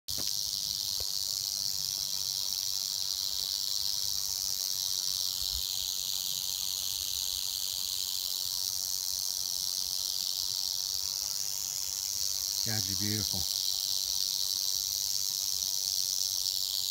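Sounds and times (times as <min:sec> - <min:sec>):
rattlesnake rattling: 0:00.1 - 0:16.9.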